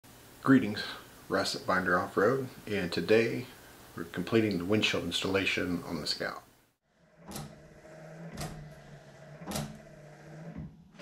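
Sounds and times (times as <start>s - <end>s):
wiper motor hum: 7.0s - 11.0s.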